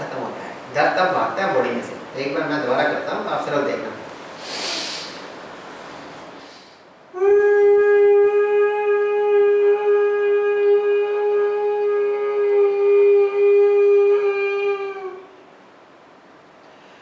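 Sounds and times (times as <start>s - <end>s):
man humming high note: 7.1s - 15.4s.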